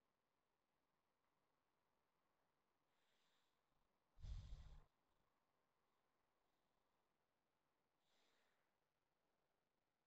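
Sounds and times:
exhale into microphone: 0:04.2 - 0:04.8.

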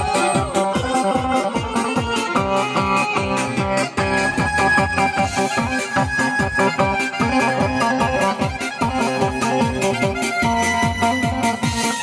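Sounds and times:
fast steady drum beat: 0:00.0 - 0:12.0
folk dance music on keyboard: 0:00.0 - 0:12.0.

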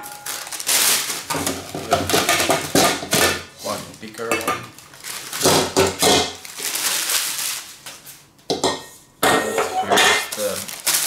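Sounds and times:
paper rustling and crinkling: 0:00.0 - 0:02.2, 0:03.6 - 0:05.8, 0:06.4 - 0:08.2, 0:10.2 - 0:11.0
metal pots clinking and scraping: 0:01.3 - 0:06.4, 0:08.5 - 0:10.6.

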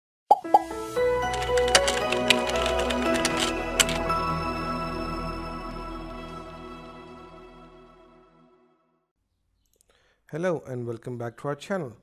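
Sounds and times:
light music with sustained notes: 0:00.4 - 0:08.9.

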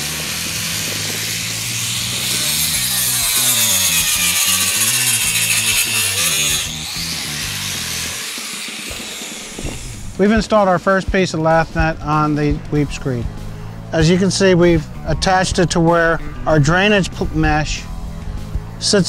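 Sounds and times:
angle grinder cutting steel: 0:00.0 - 0:10.6.

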